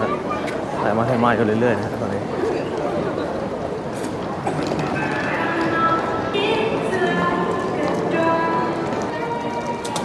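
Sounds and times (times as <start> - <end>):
crowd footsteps on pavement: 0.0 - 10.0
music playing: 4.5 - 10.0.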